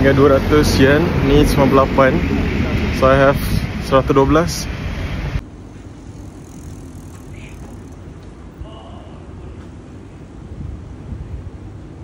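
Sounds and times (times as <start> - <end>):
city street rumble: 0.0 - 12.0
faint distant sounds: 5.4 - 10.4.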